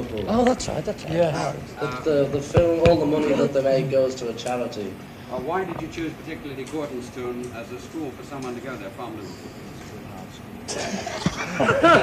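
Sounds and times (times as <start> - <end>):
low recording hum: 0.0 - 12.0
murmur of voices: 0.0 - 12.0.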